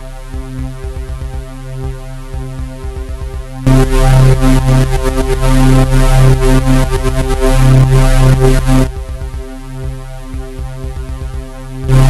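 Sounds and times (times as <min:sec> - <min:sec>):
synth bass line: 0:00.0 - 0:12.0
kick drum hits: 0:00.4 - 0:03.7, 0:08.9 - 0:12.0.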